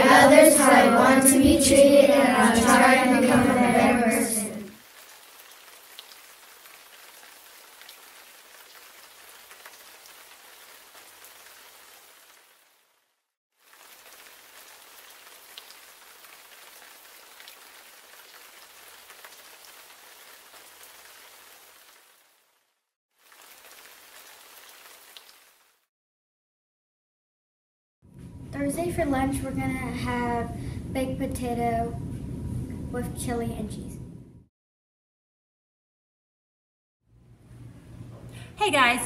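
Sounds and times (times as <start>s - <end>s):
quiet steady rain: 1.6s - 25.9s.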